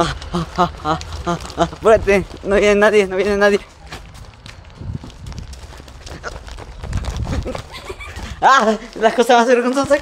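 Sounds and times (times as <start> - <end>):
hurried footsteps on pavement: 0.0 - 10.0
microphone handling rumble: 1.1 - 8.4.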